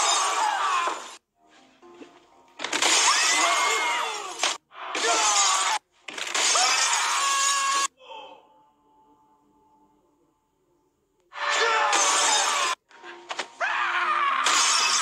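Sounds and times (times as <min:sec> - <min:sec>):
music: 0:00.0 - 0:15.0
glass panes shattering: 0:02.6 - 0:07.4, 0:11.9 - 0:12.8
people crying out: 0:13.6 - 0:15.0.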